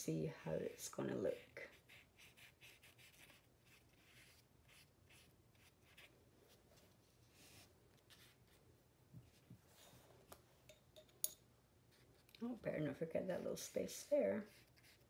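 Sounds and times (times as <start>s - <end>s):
paintbrush strokes on paper: 0.4s - 10.1s, 11.9s - 15.0s.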